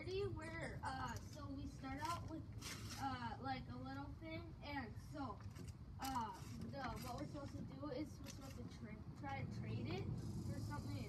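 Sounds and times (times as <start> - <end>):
people talking: 0.0 - 5.4, 6.0 - 11.0.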